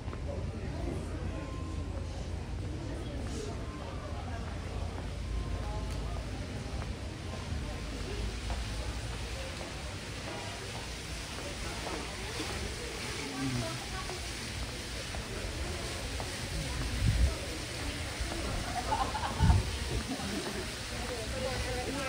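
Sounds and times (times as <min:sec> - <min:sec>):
faraway indistinct voices: 0:00.2 - 0:22.0.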